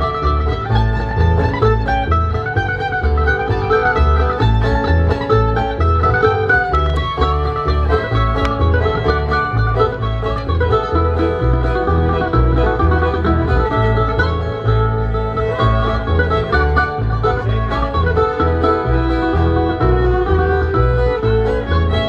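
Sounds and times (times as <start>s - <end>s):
acoustic guitar: 0.0s - 22.0s
fiddle: 0.0s - 22.0s
mandolin: 0.0s - 22.0s
upright bass line: 0.0s - 22.0s.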